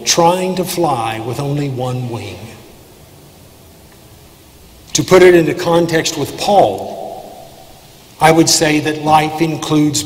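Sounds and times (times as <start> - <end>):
man speaking: 0.0 - 2.7, 4.9 - 7.5, 8.2 - 10.0
faint room hiss: 0.0 - 10.0.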